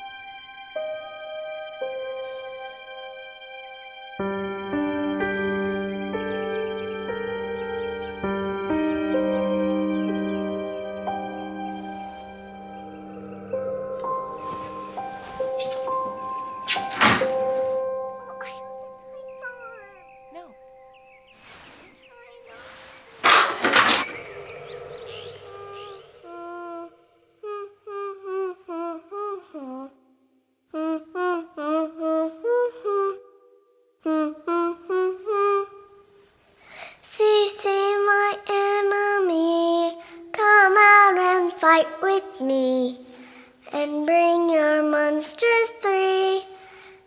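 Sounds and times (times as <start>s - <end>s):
high voice singing: 18.3s - 20.6s, 22.0s - 30.0s, 34.1s - 35.9s.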